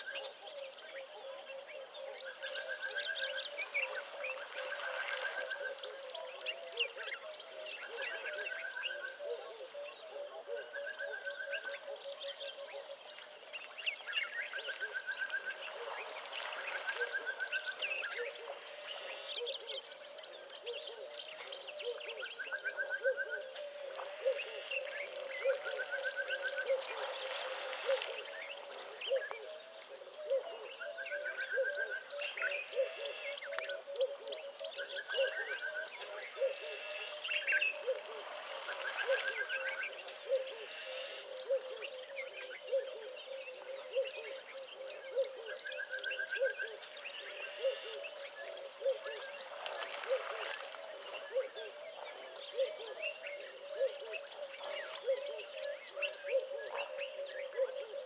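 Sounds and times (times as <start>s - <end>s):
pulsing bird chorus: 0.0s - 58.0s.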